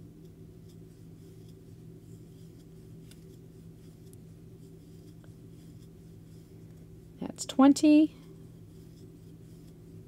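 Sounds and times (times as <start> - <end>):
low steady hum: 0.0 - 10.0
crochet hook scratching yarn: 0.2 - 7.2, 7.8 - 10.0.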